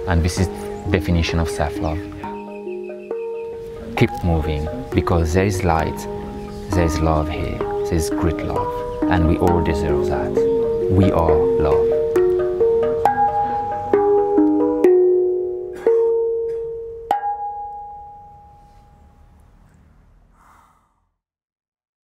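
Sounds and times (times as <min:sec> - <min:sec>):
handpan ringing metallic notes: 0:00.3 - 0:19.1.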